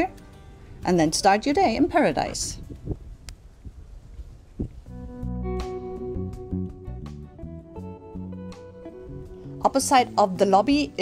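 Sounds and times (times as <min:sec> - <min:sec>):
guitar background music: 0:00.0 - 0:03.2, 0:04.8 - 0:11.0.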